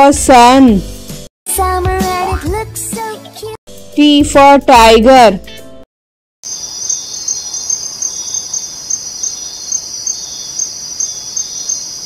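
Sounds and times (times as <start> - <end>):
insect chirring: 6.5 - 12.0.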